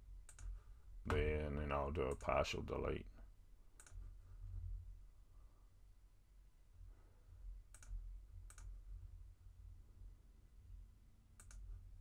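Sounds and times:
faint low hum: 0:00.0 - 0:12.0
computer mouse click: 0:00.2 - 0:00.6, 0:03.8 - 0:04.0, 0:07.7 - 0:08.8, 0:11.4 - 0:11.8.

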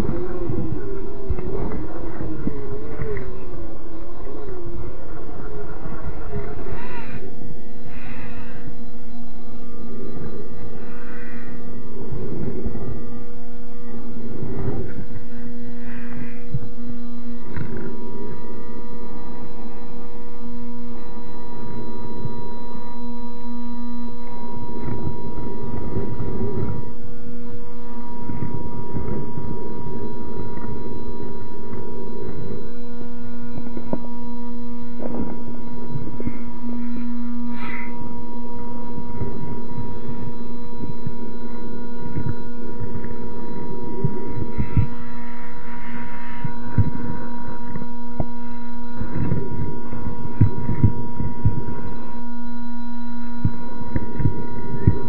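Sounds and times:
low motor hum: 0:00.0 - 0:55.0.

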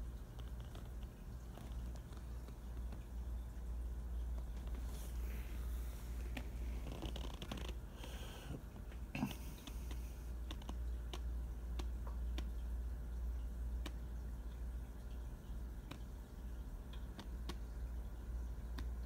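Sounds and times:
steady low hum: 0:00.0 - 0:19.0
sharp clicks and ticks: 0:09.6 - 0:12.8, 0:13.8 - 0:16.2, 0:16.9 - 0:17.6, 0:18.7 - 0:19.0.

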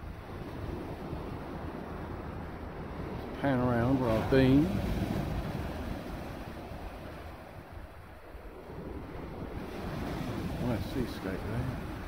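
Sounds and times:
surf washing up shingle beach: 0:00.0 - 0:12.0
wind buffeting microphone: 0:00.0 - 0:12.0.

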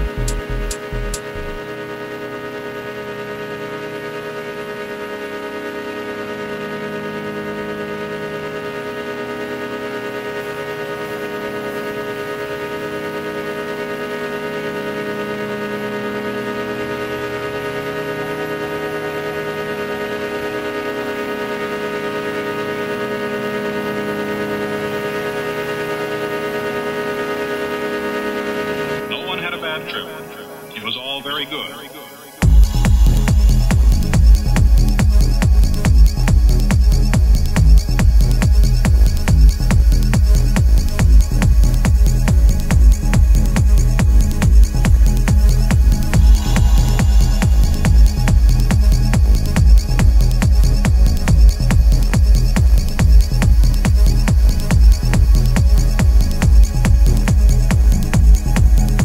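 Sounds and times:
low synth layer: 0:00.0 - 0:59.0
synth pad chord: 0:00.0 - 0:59.0.

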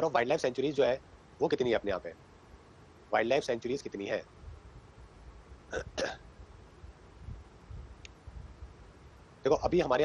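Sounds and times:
man's throat sounds: 0:05.7 - 0:06.2.

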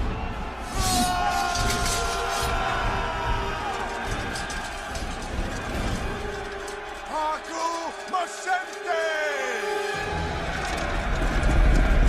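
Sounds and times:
many running feet rumbling: 0:00.0 - 0:08.8, 0:10.0 - 0:12.0.

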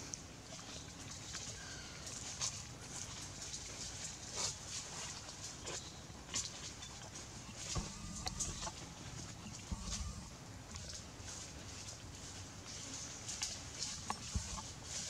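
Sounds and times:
dry leaves crackling: 0:00.7 - 0:15.0
dull thumps: 0:07.6 - 0:11.0.

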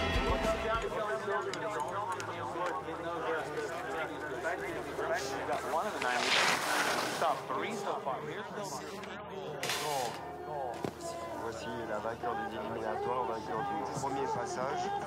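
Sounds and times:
background music: 0:00.0 - 0:15.0
broadcast commentary: 0:00.0 - 0:15.0.

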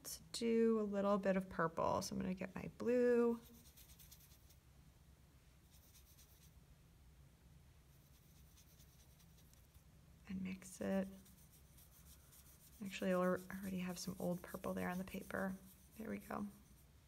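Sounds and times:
low steady hum: 0:00.0 - 0:17.0
brush scrubbing paint on paper: 0:03.4 - 0:04.6, 0:05.6 - 0:06.6, 0:07.9 - 0:09.8, 0:10.6 - 0:17.0.

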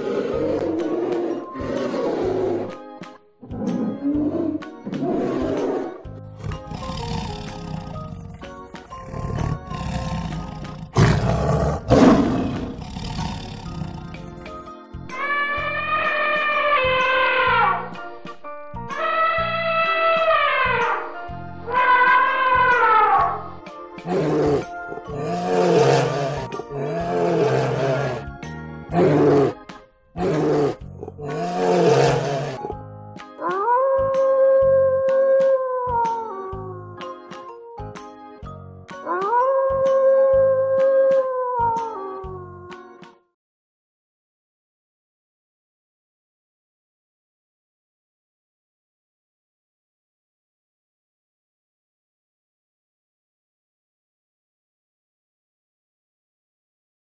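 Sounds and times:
tiger growling and roaring: 0:00.0 - 0:02.8, 0:03.4 - 0:14.6, 0:24.0 - 0:32.8
polar bear growling: 0:00.0 - 0:14.6, 0:24.0 - 0:32.8
light background music: 0:00.0 - 0:43.3.

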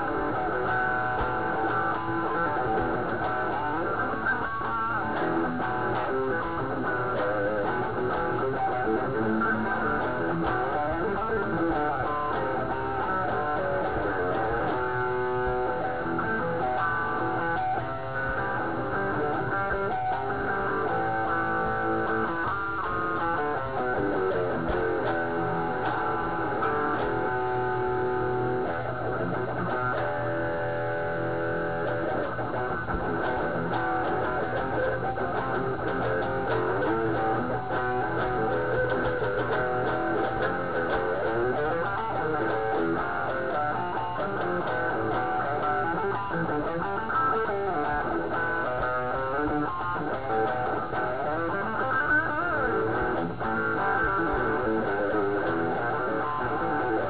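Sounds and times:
electric guitar playing: 0:00.0 - 0:57.0.

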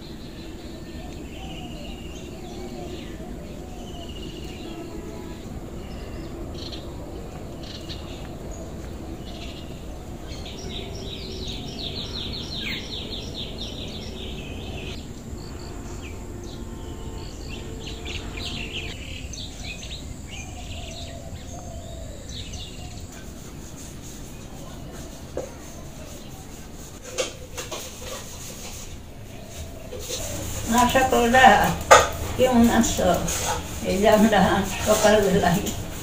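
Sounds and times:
birds chirping and singing: 0:00.0 - 0:36.0
outdoor background noise: 0:00.0 - 0:36.0.

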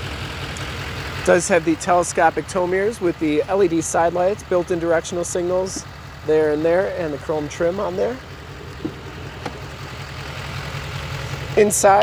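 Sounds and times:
diesel engine idling: 0:00.0 - 0:12.0.

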